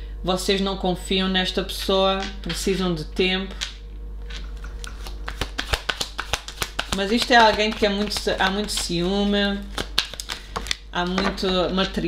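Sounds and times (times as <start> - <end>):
cards being shuffled: 4.3 - 10.8.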